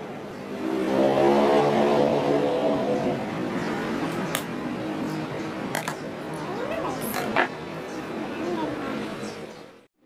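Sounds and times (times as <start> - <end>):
vehicle engine passing by: 0.0 - 4.4.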